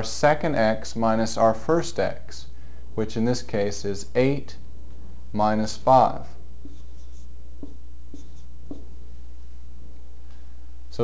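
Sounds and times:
steady low hum: 0.0s - 11.0s
marker writing on whiteboard: 6.6s - 9.0s.

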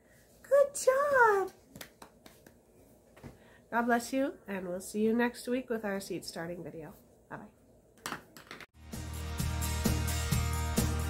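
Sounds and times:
music with steady beat: 8.8s - 11.0s.

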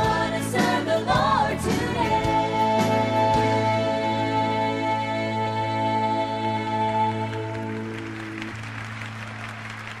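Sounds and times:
audience applauding: 7.2s - 10.0s.

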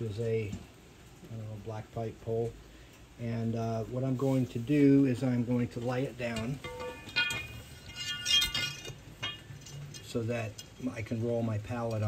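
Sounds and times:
iron pipe clanking on concrete: 6.0s - 11.1s.

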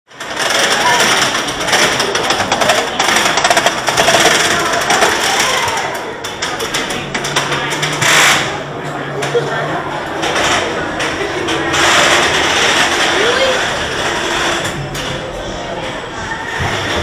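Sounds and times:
people's voices: 0.1s - 17.0s
roller coaster train rattling: 0.1s - 17.0s.

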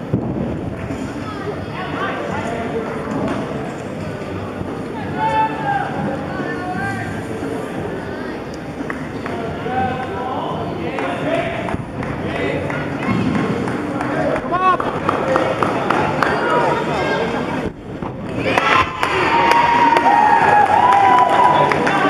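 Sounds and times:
crowd chattering and calling out: 0.0s - 22.0s
crowd cheering and shouting: 5.0s - 7.2s, 18.2s - 22.0s.

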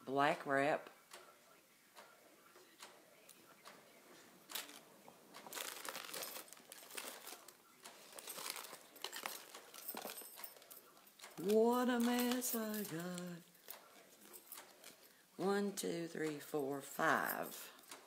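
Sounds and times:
packaging rustling and crinkling: 4.5s - 15.1s.

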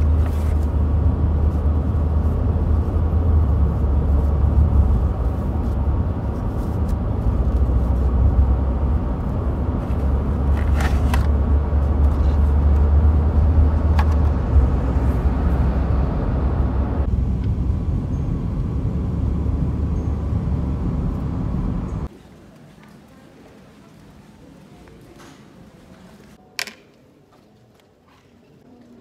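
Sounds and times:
car engine and road noise: 0.0s - 22.1s.

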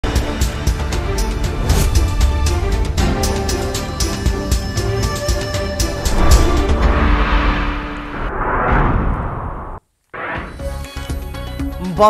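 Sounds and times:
news theme music with heavy bass: 0.1s - 8.1s.

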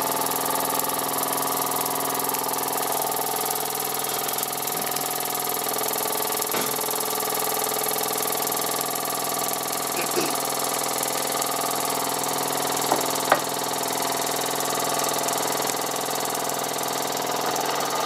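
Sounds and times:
toy steam engine buzzing: 0.0s - 18.0s.

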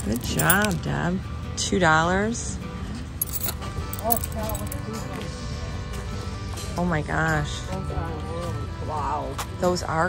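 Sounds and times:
metal keys jangling: 0.0s - 0.8s, 3.2s - 4.9s.

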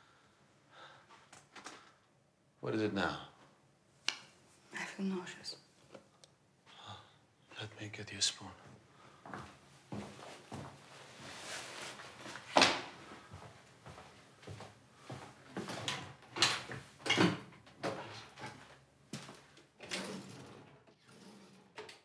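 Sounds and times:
kitchen drawers opening and shutting: 15.6s - 18.6s, 19.8s - 22.0s.

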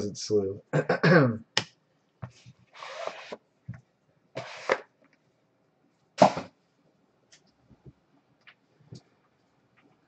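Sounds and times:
gloved hands rubbing cardboard box: 2.6s - 3.4s, 4.4s - 4.8s.

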